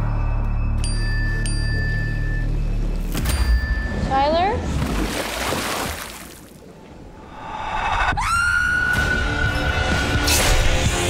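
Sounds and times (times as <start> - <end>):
low swell: 7.0 - 10.1.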